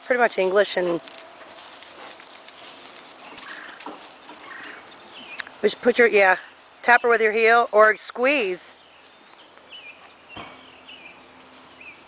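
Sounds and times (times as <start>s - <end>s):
hooves on grass: 0.0s - 12.0s.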